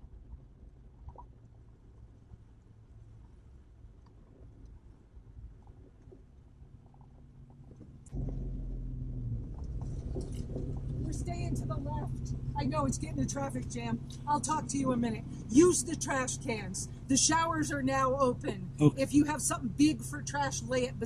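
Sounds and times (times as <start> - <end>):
vehicle engine low rumble: 0.0 - 21.0
voices: 10.9 - 21.0.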